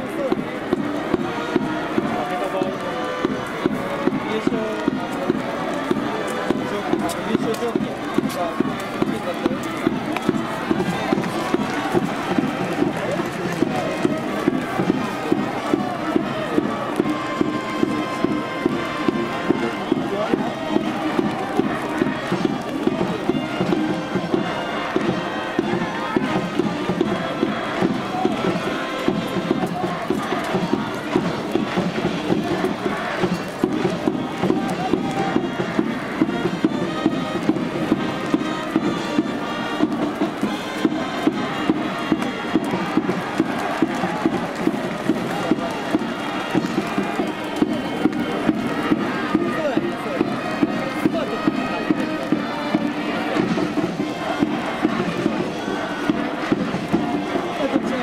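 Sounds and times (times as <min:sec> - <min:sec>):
brass band playing: 0:00.0 - 0:58.0
crowd chanting: 0:00.0 - 0:58.0
steady drum beat: 0:00.0 - 0:58.0.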